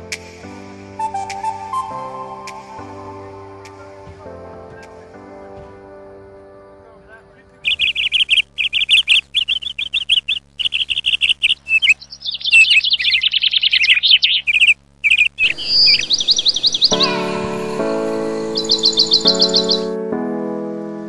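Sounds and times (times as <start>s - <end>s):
soft music: 0.0s - 7.7s, 15.5s - 21.0s
songbird chirping trills: 7.6s - 20.1s.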